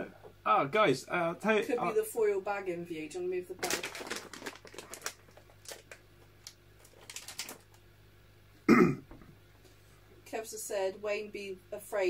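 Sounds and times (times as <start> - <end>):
person clearing throat: 8.6 - 9.2.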